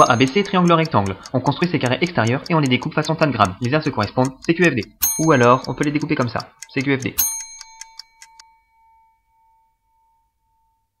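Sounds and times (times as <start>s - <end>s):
clock ticking: 0.0s - 8.4s.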